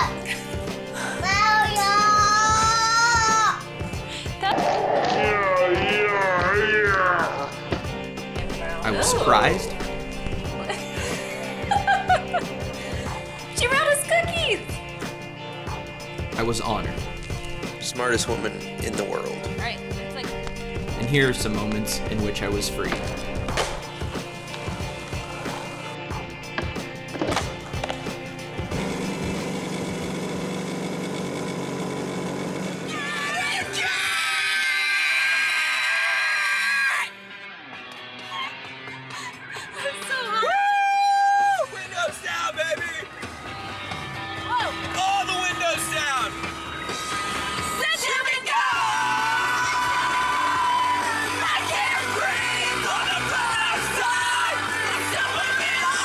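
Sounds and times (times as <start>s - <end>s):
background music: 0.0s - 31.7s, 32.7s - 56.0s
people shouting and screaming: 1.7s - 3.7s, 4.4s - 7.7s, 8.4s - 10.1s, 32.9s - 37.2s, 38.2s - 43.2s, 44.2s - 56.0s
motor scooter engine running: 27.4s - 33.8s
people singing and yelling along: 47.3s - 56.0s.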